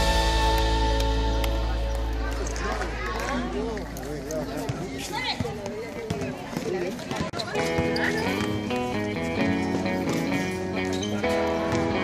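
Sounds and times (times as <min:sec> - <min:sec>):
background music with held notes: 0:00.0 - 0:02.4.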